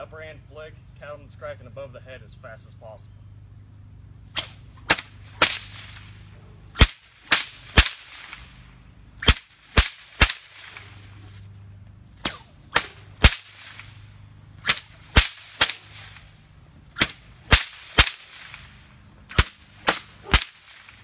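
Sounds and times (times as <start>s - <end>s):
whip cracking: 4.3s - 11.5s, 12.1s - 21.0s.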